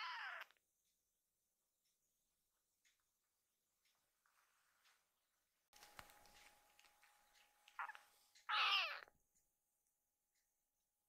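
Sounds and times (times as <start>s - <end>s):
kitten meowing: 0.0s - 0.5s, 7.8s - 9.1s.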